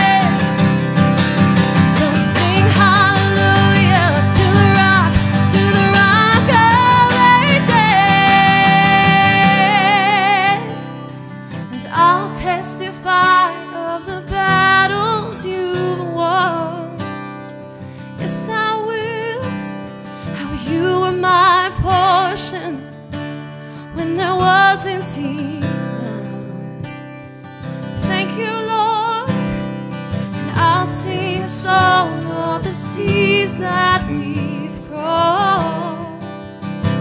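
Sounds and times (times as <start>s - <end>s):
woman singing worship song: 0.0s - 0.7s, 1.8s - 11.1s, 11.7s - 17.0s, 18.2s - 19.6s, 20.3s - 22.8s, 23.8s - 26.8s, 28.0s - 29.5s, 30.4s - 37.0s
acoustic guitar: 0.0s - 37.0s.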